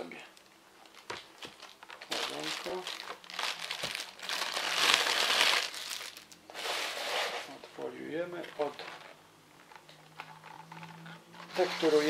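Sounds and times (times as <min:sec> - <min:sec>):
cardboard packaging rustling: 0:00.8 - 0:12.0.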